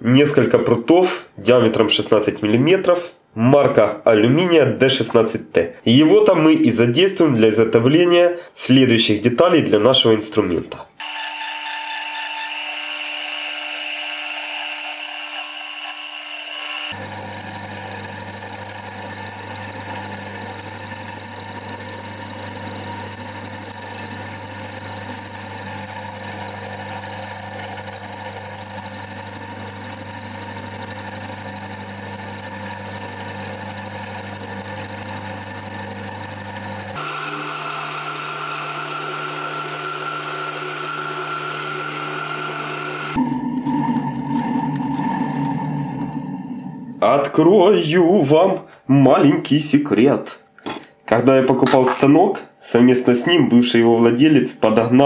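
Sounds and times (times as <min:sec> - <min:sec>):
metal lathe cutting metal: 0:11.0 - 0:43.8.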